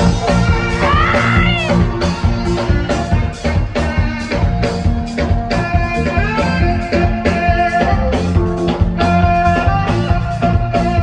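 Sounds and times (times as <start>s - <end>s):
bass guitar: 0.0s - 11.0s
drum kit steady beat: 0.0s - 11.0s
saxophone playing lead: 0.0s - 11.0s.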